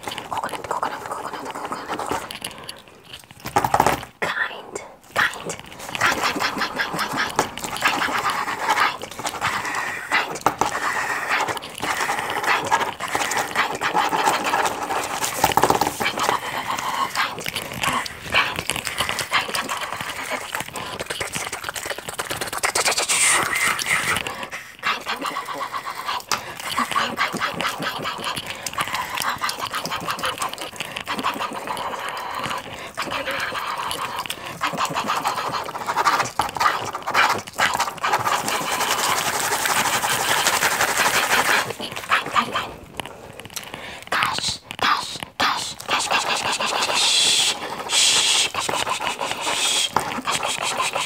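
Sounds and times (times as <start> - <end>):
pen scribbling on paper: 5.2 - 42.5, 44.4 - 51.0.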